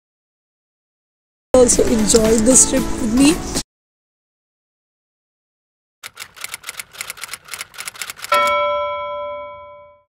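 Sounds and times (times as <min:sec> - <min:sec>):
typewriter key clicks: 0:06.0 - 0:08.6
typewriter bell ding: 0:07.8 - 0:10.0.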